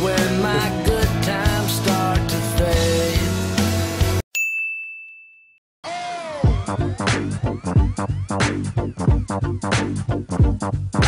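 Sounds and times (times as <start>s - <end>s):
pop song: 0.0s - 4.2s
high bell-like ding: 4.4s - 5.6s
electronic music: 5.9s - 11.0s.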